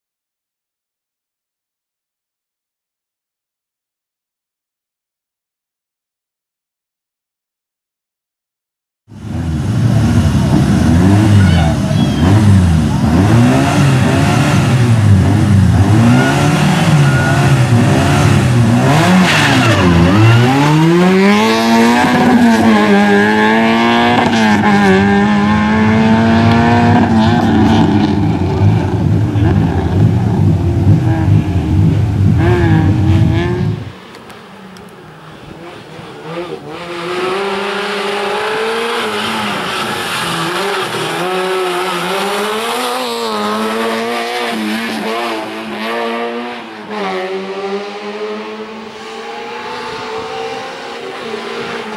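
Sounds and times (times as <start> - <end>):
car engine revving hard: 9.2 - 33.9, 35.5 - 51.9.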